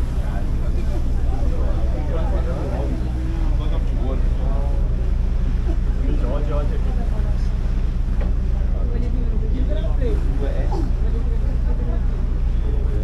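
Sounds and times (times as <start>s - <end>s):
ferry engine droning: 0.0s - 13.0s
voices talking: 0.0s - 13.0s.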